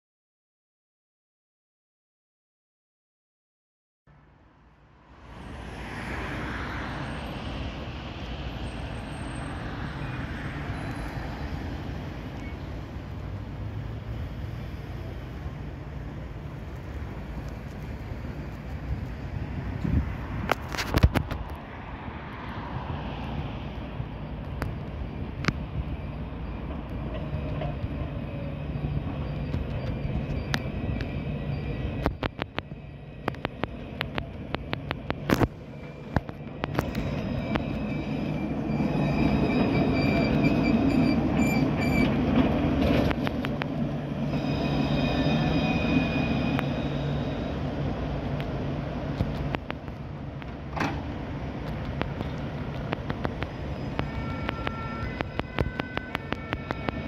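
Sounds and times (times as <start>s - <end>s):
tram rolling rumble: 4.1s - 57.0s.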